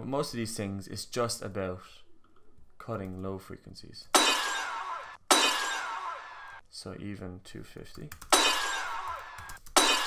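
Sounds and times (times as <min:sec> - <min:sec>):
glass smash sound effect: 0:04.2 - 0:06.2, 0:08.3 - 0:09.0, 0:09.8 - 0:10.0.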